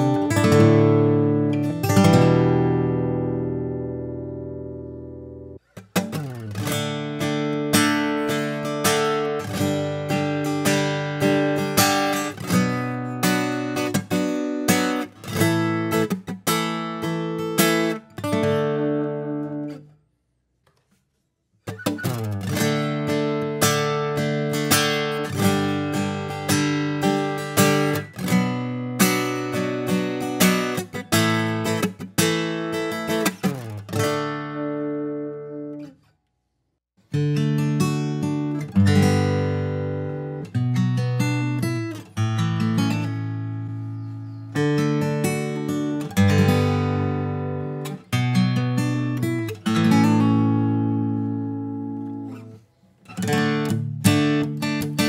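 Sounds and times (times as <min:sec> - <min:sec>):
acoustic guitar playing: 0:00.0 - 0:20.0, 0:21.6 - 0:36.1, 0:37.0 - 0:55.0.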